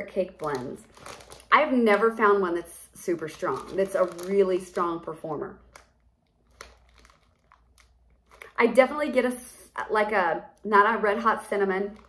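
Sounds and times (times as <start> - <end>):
plastic packaging crinkling: 0.0 - 1.7, 3.0 - 8.6.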